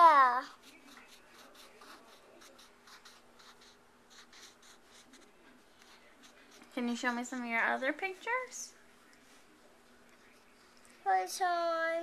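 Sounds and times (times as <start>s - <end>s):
crayon scratching on paper: 0.0s - 8.2s.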